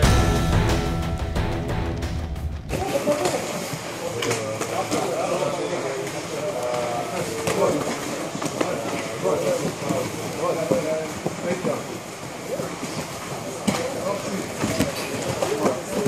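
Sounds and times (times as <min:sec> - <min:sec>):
logo intro music: 0:00.0 - 0:03.0.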